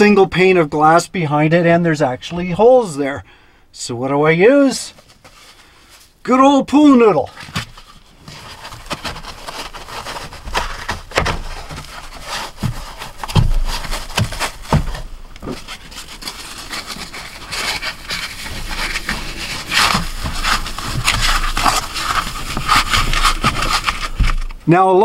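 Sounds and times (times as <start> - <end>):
foam rubbing and scraping: 7.2 - 24.6.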